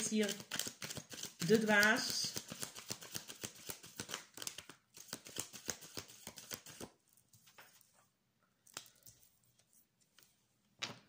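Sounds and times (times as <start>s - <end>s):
cards clicking: 0.0s - 6.9s.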